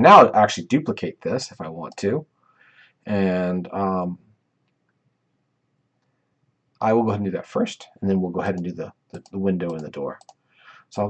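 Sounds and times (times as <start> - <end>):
person speaking: 0.0 - 2.2, 3.1 - 4.2, 6.8 - 10.2
computer mouse clicks: 8.6 - 10.4.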